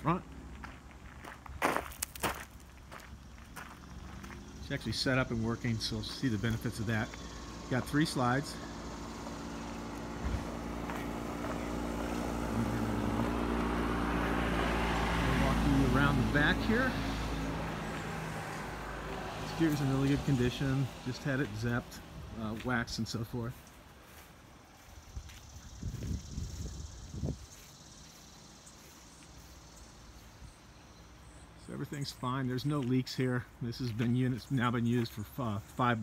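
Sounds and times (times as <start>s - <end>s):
insects chirring: 0.0s - 36.0s
low machine hum: 4.6s - 19.4s.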